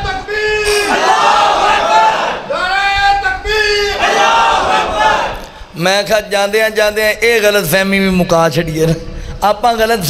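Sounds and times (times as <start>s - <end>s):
voices chanting a long call: 0.6s - 2.8s, 3.8s - 5.4s.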